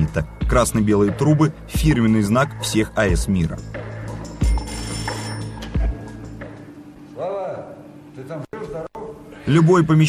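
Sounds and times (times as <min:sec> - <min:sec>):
background music: 0:00.0 - 0:07.9
telephone bell ringing: 0:04.4 - 0:05.8.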